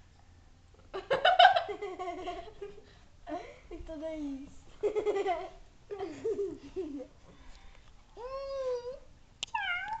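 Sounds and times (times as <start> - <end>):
cat meowing: 9.5 - 10.0.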